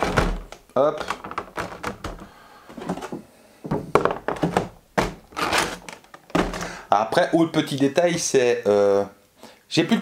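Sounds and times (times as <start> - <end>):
plastic packaging handling: 3.9 - 6.8
dull thunks: 6.3 - 6.8.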